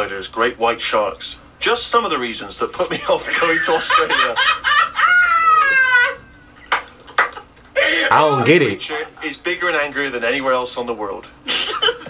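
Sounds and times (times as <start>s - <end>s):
man laughing hard: 2.8s - 6.4s, 11.5s - 12.0s
high-pitched laughing squeal: 4.6s - 6.5s.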